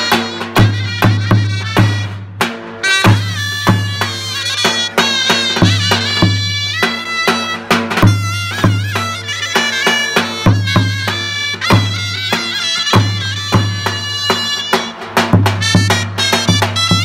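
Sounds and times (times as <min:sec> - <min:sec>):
shrill folk melody on reed pipes: 0:00.0 - 0:02.1, 0:02.8 - 0:17.0.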